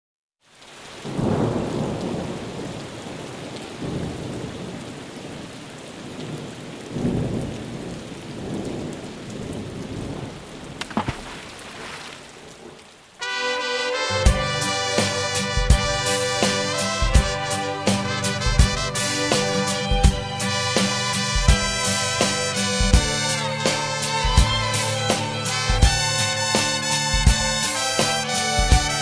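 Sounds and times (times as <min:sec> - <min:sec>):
steady rain: 0:00.4 - 0:29.0
thunder rolls and cracks: 0:01.0 - 0:11.2
band with brass: 0:13.2 - 0:29.0.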